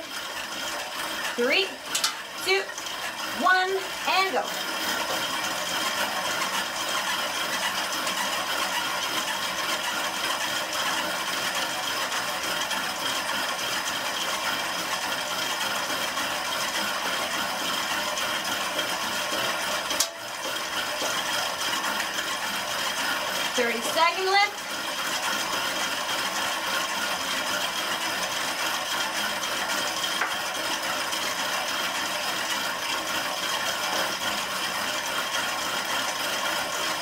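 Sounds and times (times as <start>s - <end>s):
exercise bike flywheel whirring: 0.0s - 37.0s.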